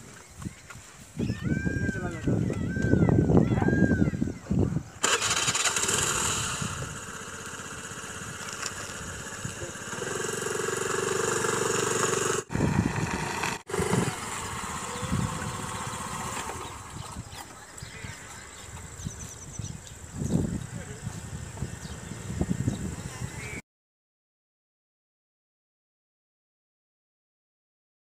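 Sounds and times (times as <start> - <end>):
motor scooter engine running: 5.0 - 23.6.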